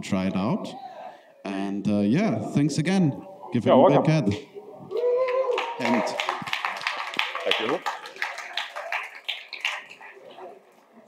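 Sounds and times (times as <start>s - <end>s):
audience applauding: 5.0s - 10.5s.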